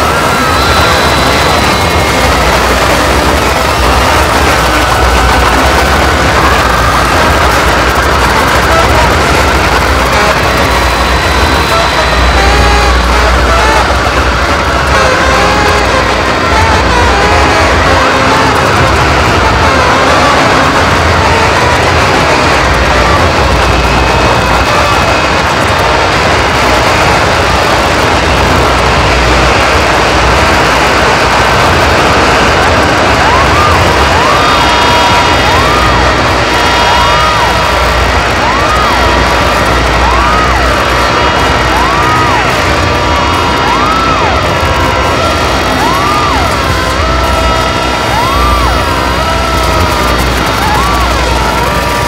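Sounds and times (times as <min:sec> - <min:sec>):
distorted noise music: 0:00.0 - 0:52.0
heavy low rumble: 0:00.0 - 0:52.0
warbling electronic tone: 0:00.0 - 0:52.0.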